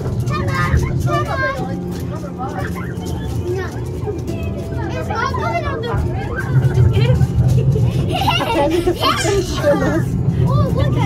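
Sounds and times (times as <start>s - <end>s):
passengers talking: 0.0s - 11.0s
ride train low rumble: 0.0s - 11.0s.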